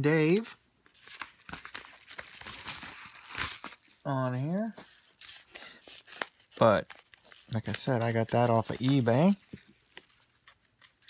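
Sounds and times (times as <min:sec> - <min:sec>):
bubble mailer crinkling: 0:00.3 - 0:04.0, 0:05.2 - 0:11.0.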